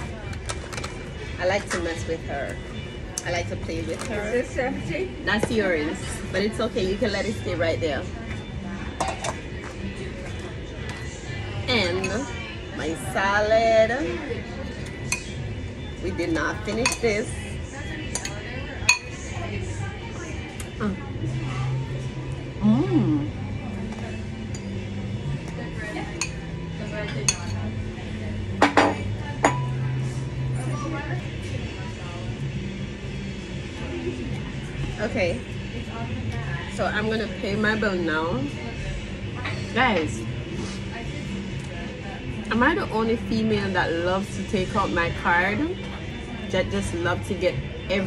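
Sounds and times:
low hum: 20.7 - 26.0
tableware clinking: 28.6 - 29.8.

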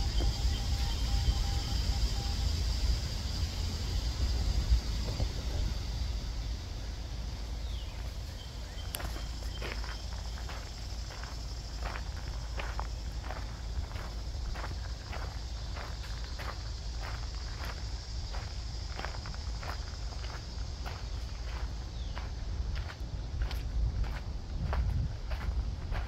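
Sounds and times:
steady high hiss: 0.0 - 26.0
footsteps walking: 8.9 - 26.0.

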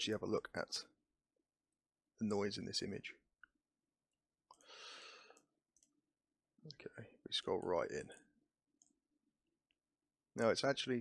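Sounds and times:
computer mouse clicks: 5.3 - 6.0.

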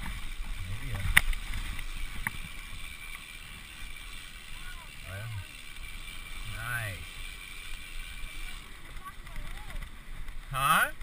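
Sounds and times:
mountain bike rolling on dirt: 0.0 - 11.0.

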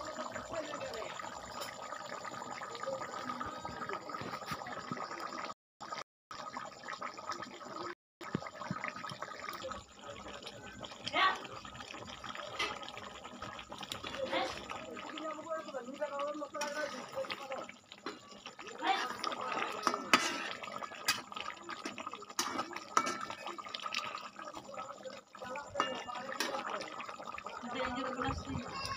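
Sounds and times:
curry boiling in metal pot: 0.0 - 28.9.

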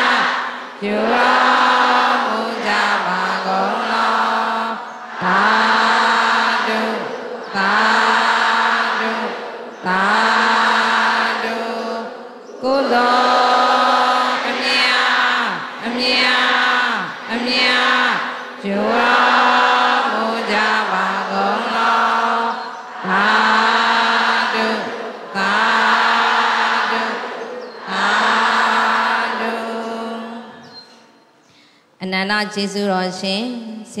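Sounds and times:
women chanting in unison: 0.0 - 31.2, 32.0 - 34.0
breaths: 31.4 - 32.0.

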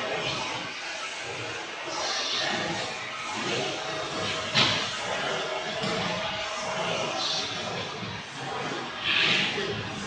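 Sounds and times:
large hall background noise: 0.0 - 10.0.

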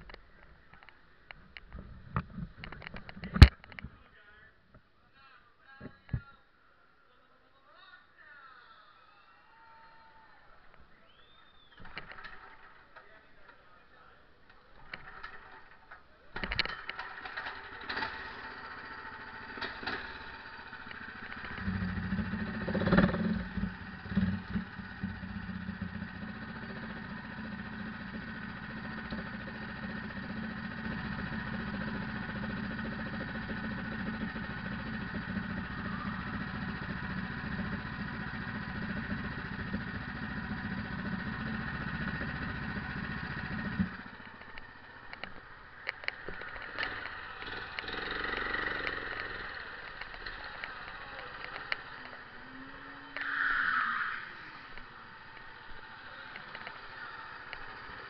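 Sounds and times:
go-kart engine starting and idling: 11.2 - 13.1, 14.5 - 58.0.

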